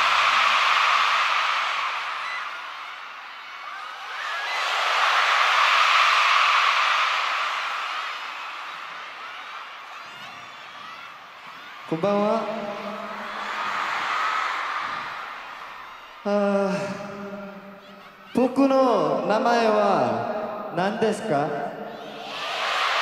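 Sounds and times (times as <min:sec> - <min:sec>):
audience screaming and cheering: 0:00.0 - 0:23.0.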